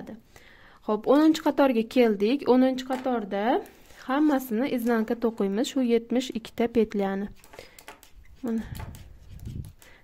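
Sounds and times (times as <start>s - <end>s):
hands handling yarn: 7.3s - 10.0s
knitting needles clicking: 7.4s - 10.0s.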